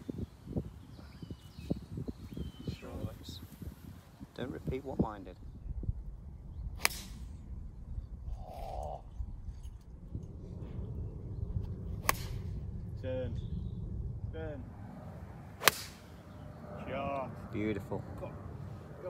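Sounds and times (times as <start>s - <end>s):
golf club striking ball: 6.8s - 7.4s, 12.0s - 12.6s, 15.6s - 16.4s.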